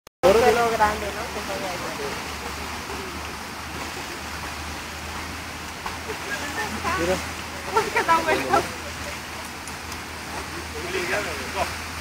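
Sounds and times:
rushing water: 0.2s - 12.0s.

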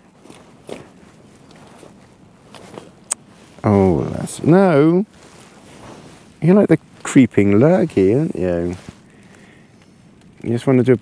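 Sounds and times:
soft rustling and shuffling: 0.0s - 10.9s.

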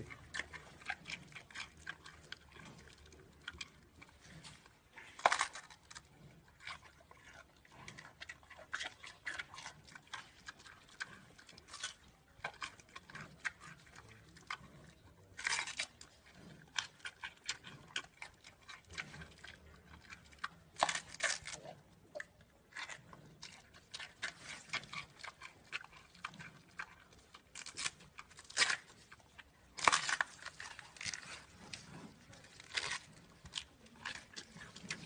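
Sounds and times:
panda chewing bamboo: 0.0s - 35.0s.

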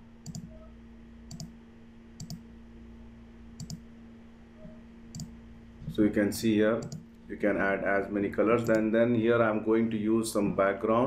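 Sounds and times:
faint steady hum: 0.0s - 11.0s
mouse buttons clicking: 0.2s - 0.6s, 1.3s - 1.5s, 2.2s - 2.4s, 3.6s - 3.8s, 4.6s - 5.3s, 6.8s - 7.0s.

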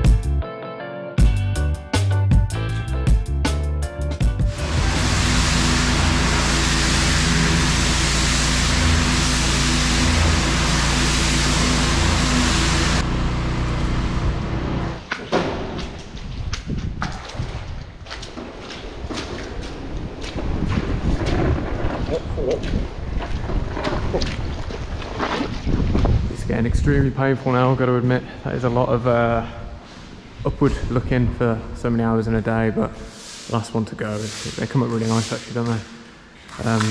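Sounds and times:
squeegee scraping concrete floor: 4.4s - 13.1s, 32.8s - 36.9s
pressure washer spraying: 4.4s - 14.0s, 33.0s - 36.9s.

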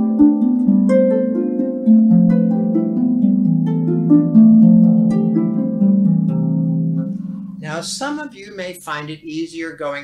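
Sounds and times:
harp notes plucked: 0.0s - 9.4s
man's voice: 7.6s - 10.0s.

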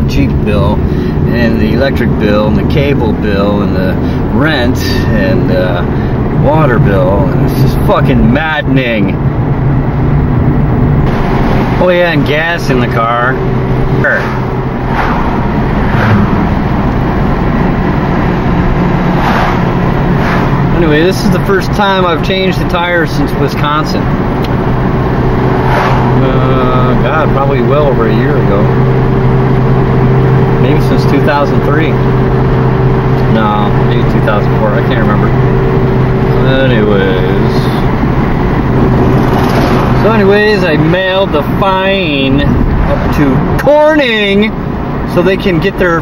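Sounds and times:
car engine running: 0.0s - 46.0s
tyres rolling on road: 0.0s - 46.0s
oncoming car passing: 9.0s - 45.1s.

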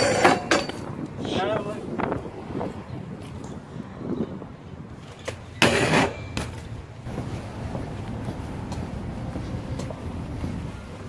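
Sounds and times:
bike clattering against concrete: 0.0s - 1.0s, 5.0s - 6.9s.

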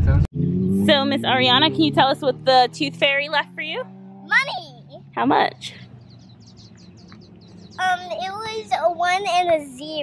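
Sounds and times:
bird chirping rapidly: 3.4s - 9.0s.

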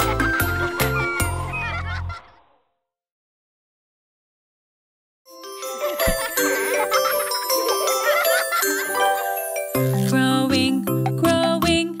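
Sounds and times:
children's song: 5.8s - 12.0s.

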